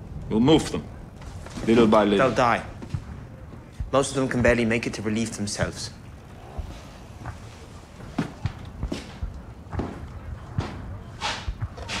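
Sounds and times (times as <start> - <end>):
soft thuds: 6.6 - 12.0
sharp swishes: 10.6 - 12.0.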